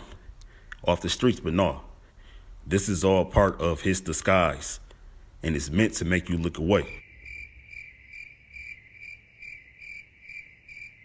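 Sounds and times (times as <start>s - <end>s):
crickets chirping: 6.6s - 11.0s.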